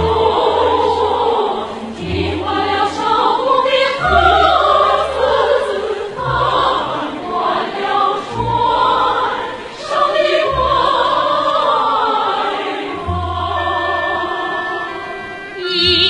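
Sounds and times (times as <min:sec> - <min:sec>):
choir singing: 0:00.0 - 0:16.0
orchestral accompaniment: 0:00.0 - 0:16.0.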